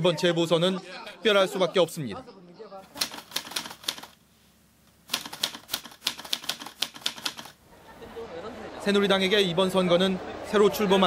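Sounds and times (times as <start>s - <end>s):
rapid sharp clicks: 2.9s - 4.2s, 4.8s - 7.6s.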